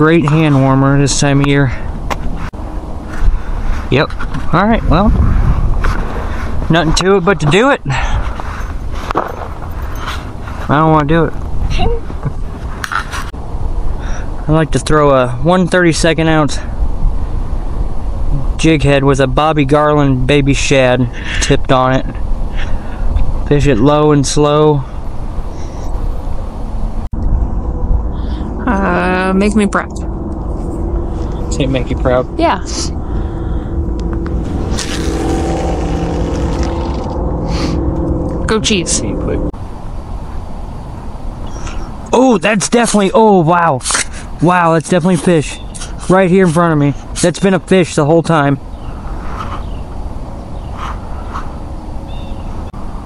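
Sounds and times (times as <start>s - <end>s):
wind buffeting microphone: 0.0s - 42.1s
low outdoor rumble: 0.0s - 53.0s
faint high chirp: 25.5s - 26.1s, 41.4s - 42.0s.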